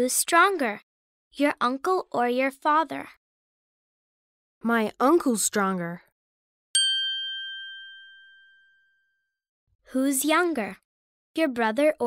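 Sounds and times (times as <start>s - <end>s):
bell-like chime: 6.8s - 9.3s.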